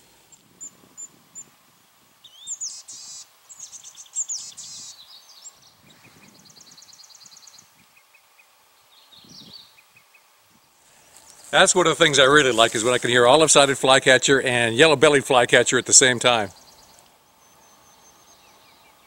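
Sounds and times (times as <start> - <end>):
songbirds singing: 0.0 - 19.0
rapid high bird trill: 2.2 - 10.3, 10.9 - 13.7, 14.5 - 19.0
high bird chips: 10.9 - 13.4.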